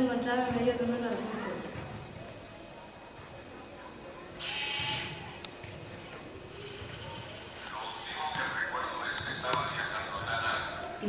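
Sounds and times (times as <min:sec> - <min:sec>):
robot servo motors whirring: 0:04.4 - 0:07.5.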